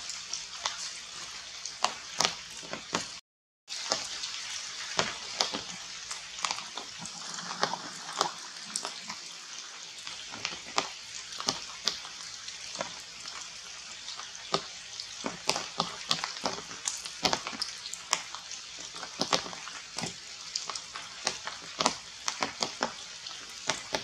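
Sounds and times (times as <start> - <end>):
rain on foliage: 0.0 - 24.0
drops dripping on leaves: 1.6 - 3.2, 4.9 - 7.0, 10.3 - 13.5, 14.1 - 24.0.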